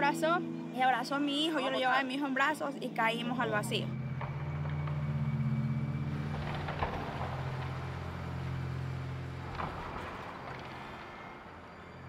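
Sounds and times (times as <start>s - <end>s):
diesel engine running: 4.0s - 12.0s
debris knocking: 4.1s - 11.3s.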